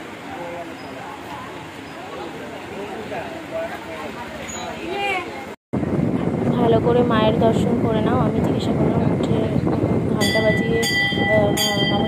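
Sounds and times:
chatter of people: 0:00.0 - 0:12.0
metal bell ringing: 0:10.2 - 0:12.0.

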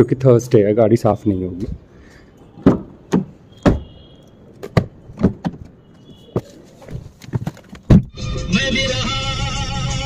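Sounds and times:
clicks and knocks on car door: 0:02.6 - 0:03.9, 0:04.6 - 0:05.7.

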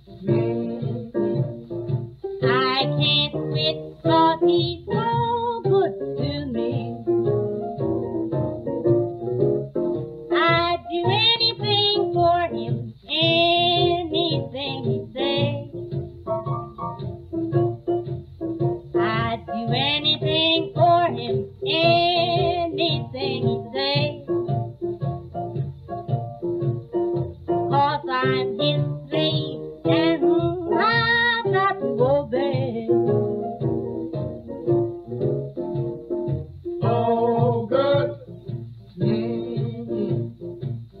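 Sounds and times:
drums: 0:00.0 - 0:41.0
old blues record: 0:00.0 - 0:41.0
piano: 0:00.0 - 0:41.0
string bass: 0:00.0 - 0:41.0.

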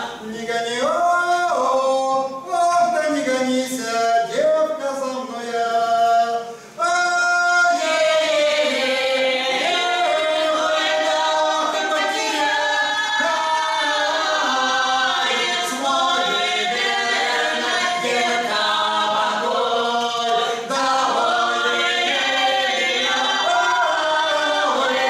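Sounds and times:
group singing a cappella: 0:00.0 - 0:25.0.

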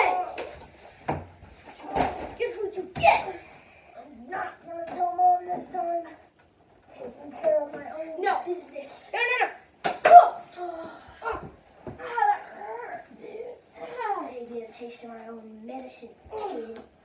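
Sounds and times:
boys calling out and groaning: 0:00.0 - 0:00.7, 0:01.8 - 0:06.2, 0:07.0 - 0:14.3.

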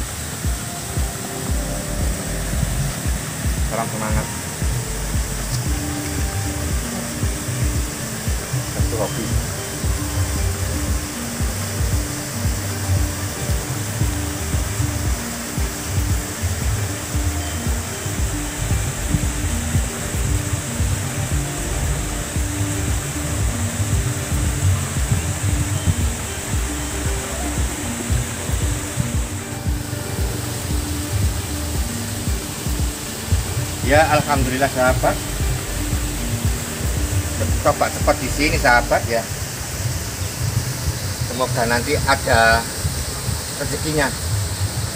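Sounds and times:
soft background music: 0:00.0 - 0:44.9
wind buffeting microphone: 0:00.0 - 0:44.9.

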